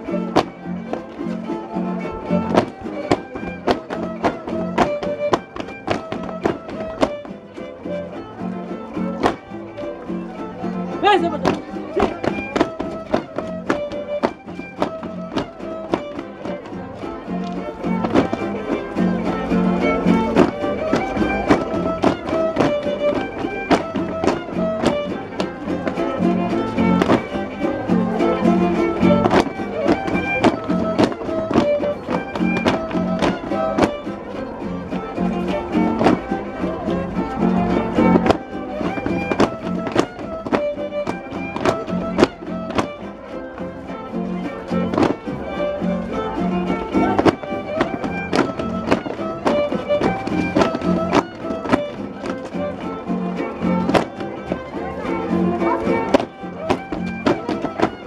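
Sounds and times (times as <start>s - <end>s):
sharp rhythmic taps: 0.0s - 58.0s
violin folk dance melody: 0.0s - 58.0s.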